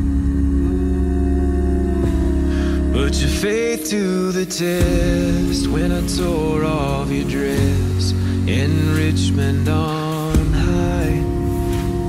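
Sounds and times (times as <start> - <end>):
deep sung bass note: 0.0 - 12.0
vocal group holding a chord: 0.0 - 12.0.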